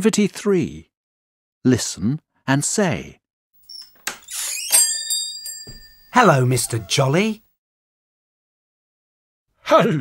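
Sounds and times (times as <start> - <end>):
squeaking scraping: 3.6 - 7.3
small bell ringing: 3.7 - 7.3.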